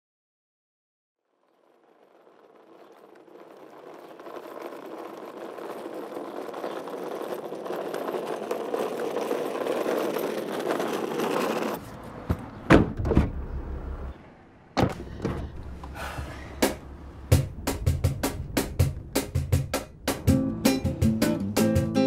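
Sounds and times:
steady rushing noise: 16.2 - 20.3.

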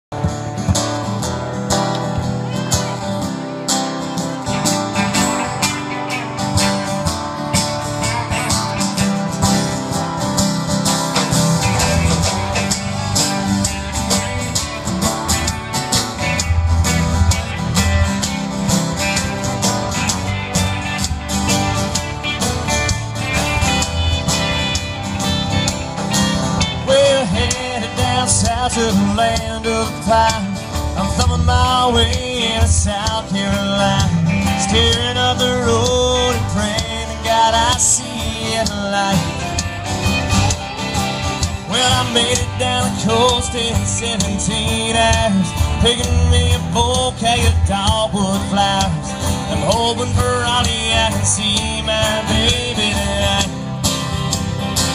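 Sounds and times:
country band playing: 0.0 - 54.9
guitars: 0.0 - 54.9
drum kit beat: 0.1 - 54.9.

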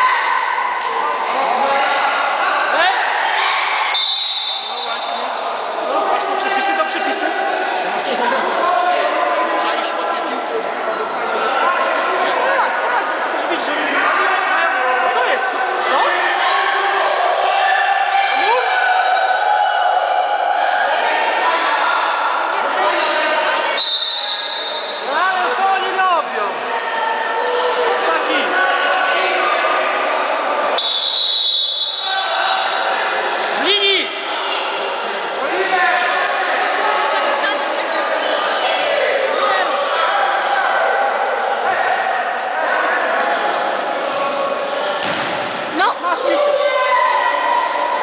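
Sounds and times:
children shouting in echoing hall: 0.0 - 4.0, 46.2 - 48.0
people shouting in echoing hall: 0.0 - 48.0
high whistle-like tone: 3.9 - 5.2, 23.7 - 25.1.

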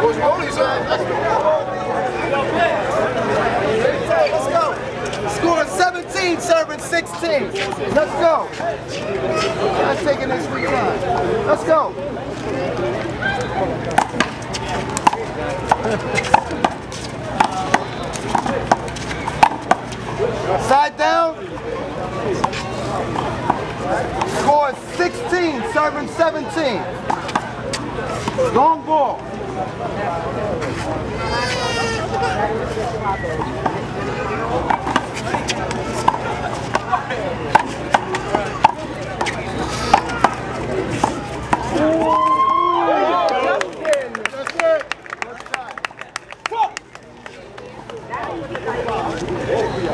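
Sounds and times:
voices talking: 0.0 - 49.9
handball hitting hands and wall: 17.4 - 19.9, 37.5 - 42.1.

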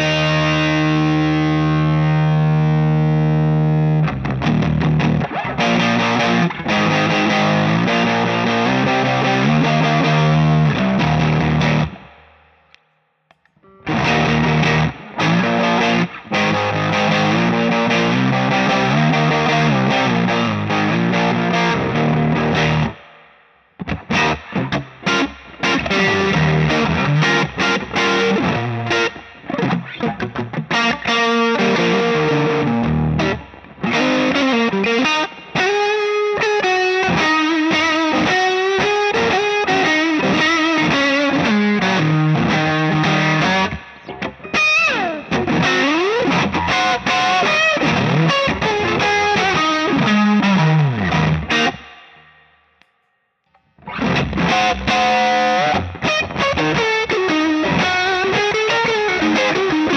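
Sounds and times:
overdriven electric guitar: 0.0 - 59.9.

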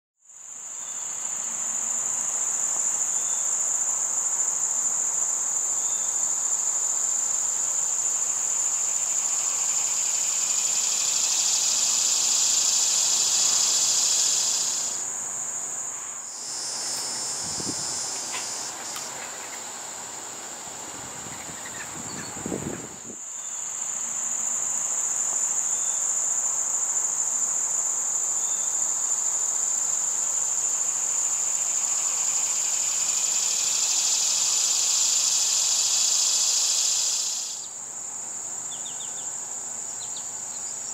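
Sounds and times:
insects trilling: 0.3 - 40.9.

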